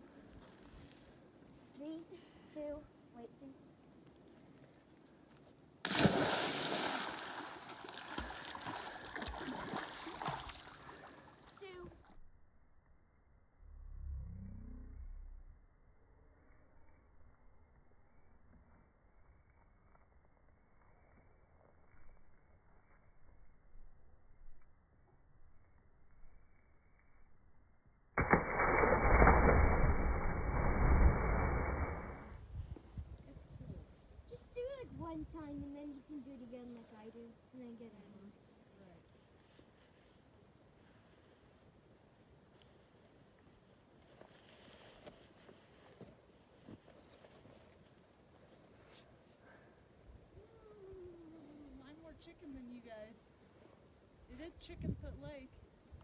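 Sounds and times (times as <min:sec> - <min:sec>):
loud splash into water: 0:05.8 - 0:10.8, 0:28.2 - 0:32.4
water sloshing and splashing: 0:05.9 - 0:11.6.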